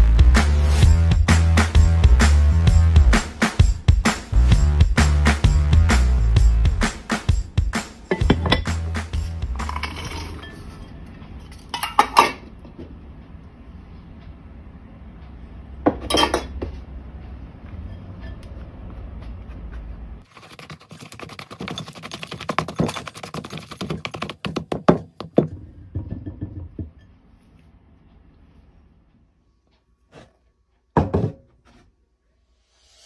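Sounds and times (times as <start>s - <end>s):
ceramic container clinking: 8.1s - 8.8s, 9.6s - 10.9s, 11.6s - 12.4s, 15.9s - 16.6s.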